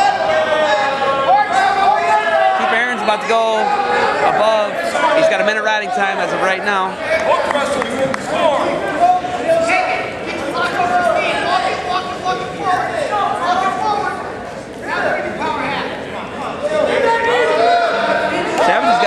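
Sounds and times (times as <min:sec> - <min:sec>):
background chatter: 0:00.0 - 0:19.0
men shouting: 0:16.8 - 0:19.0.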